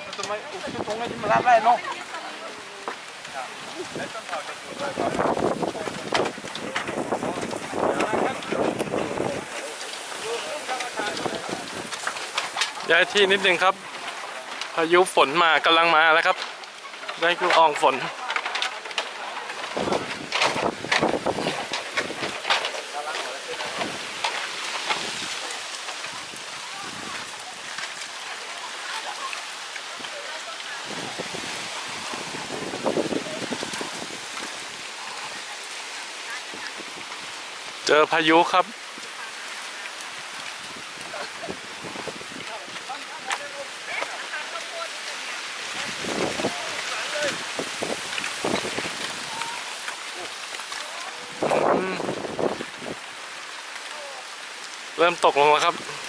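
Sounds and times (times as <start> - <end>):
faint voices: 0.0 - 56.0
storm wind rushing through trees: 0.0 - 56.0.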